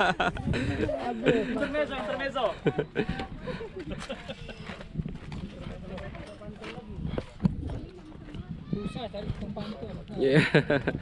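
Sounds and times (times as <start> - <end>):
faint voices: 0.0 - 10.5
footsteps on concrete: 0.9 - 11.0.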